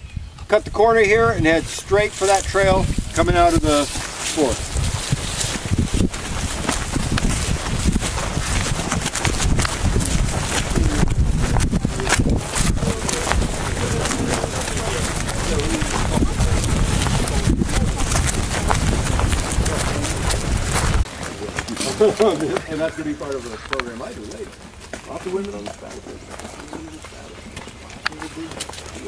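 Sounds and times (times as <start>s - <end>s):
wind rumbling on microphone: 0.0s - 24.8s
footsteps on grass: 1.1s - 29.0s
faint indistinct voices: 10.0s - 29.0s.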